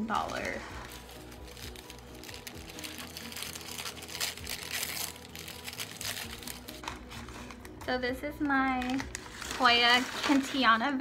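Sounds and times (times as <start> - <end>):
paper rustling and crinkling: 0.0 - 7.8, 8.4 - 11.0
faint music: 0.0 - 11.0.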